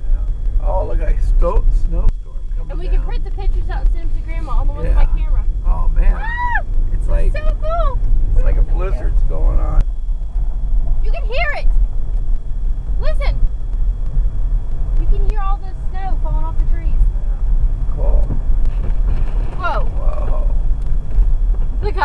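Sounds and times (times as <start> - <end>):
car rumbling from inside cabin: 0.0 - 22.0.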